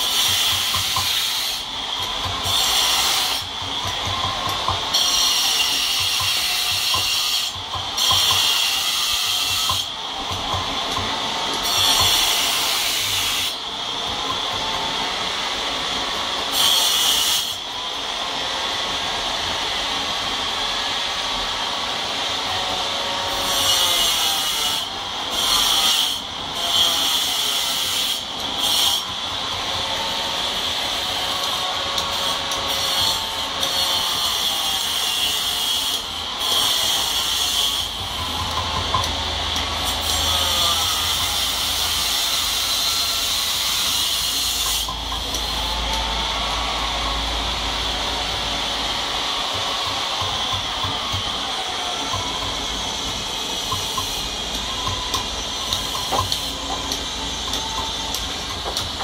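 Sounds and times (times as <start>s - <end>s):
hand tool rasping on stone: 0.0s - 15.3s, 23.3s - 46.2s, 47.8s - 59.0s.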